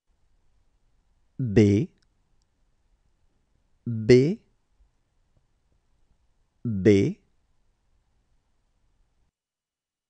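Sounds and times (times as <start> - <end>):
person saying a letter: 1.4 - 2.0, 3.9 - 4.5, 6.7 - 7.2.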